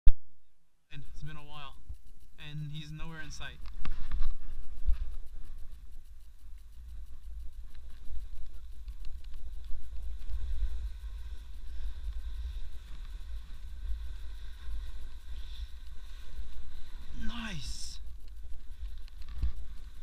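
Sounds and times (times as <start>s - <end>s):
snowboard sliding on snow: 7.8s - 20.0s.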